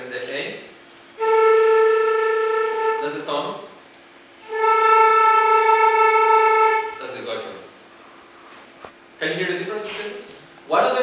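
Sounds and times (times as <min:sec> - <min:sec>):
flute holding a sustained note: 0:01.2 - 0:03.5, 0:04.4 - 0:07.7.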